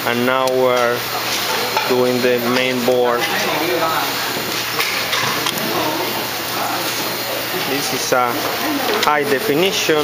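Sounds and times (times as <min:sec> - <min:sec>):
workshop room noise: 0:00.0 - 0:10.0.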